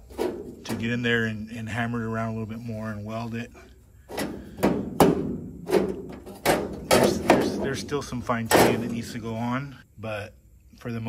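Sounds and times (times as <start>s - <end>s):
sheet steel knocking and clanking: 0.0s - 1.3s, 4.0s - 9.2s.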